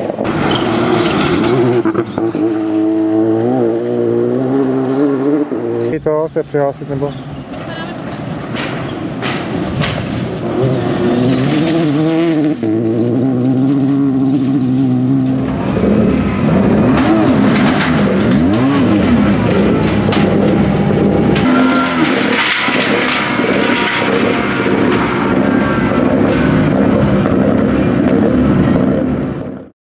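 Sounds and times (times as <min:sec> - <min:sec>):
rally car engine revving: 0:00.0 - 0:07.2, 0:08.0 - 0:29.7.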